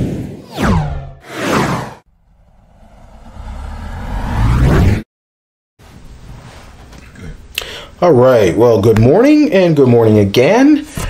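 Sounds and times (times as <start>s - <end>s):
whoosh with deep rumble: 0.0s - 5.1s.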